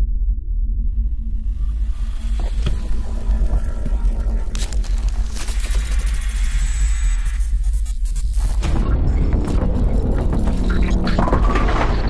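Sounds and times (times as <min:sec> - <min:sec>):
electronic music with deep bass: 0:00.8 - 0:12.0.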